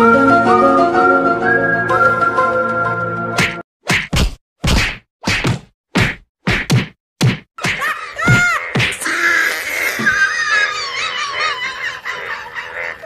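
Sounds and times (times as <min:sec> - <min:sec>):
comic whack sound effects: 0:03.4 - 0:09.0.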